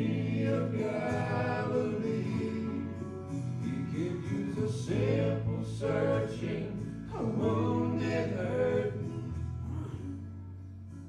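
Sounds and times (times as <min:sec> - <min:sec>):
men singing in harmony: 0:00.0 - 0:09.4.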